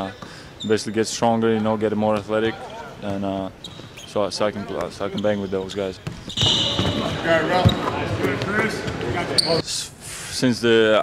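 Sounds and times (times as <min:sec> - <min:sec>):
voices calling across gym: 0:00.0 - 0:11.0
basketball bouncing on wood floor: 0:06.0 - 0:09.0.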